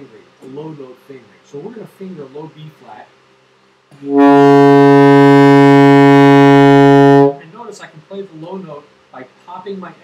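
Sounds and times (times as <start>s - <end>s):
saxophone holding a low note: 4.0s - 7.4s.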